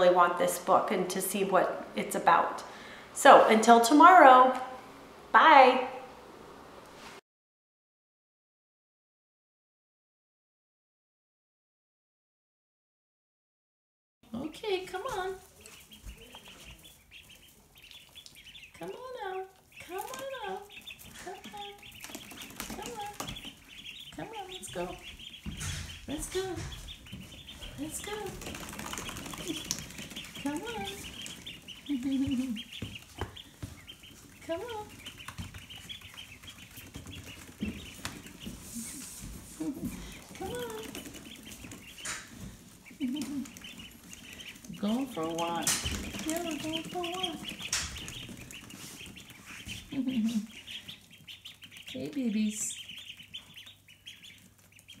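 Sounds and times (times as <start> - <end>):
ducklings peeping: 14.3 - 55.0.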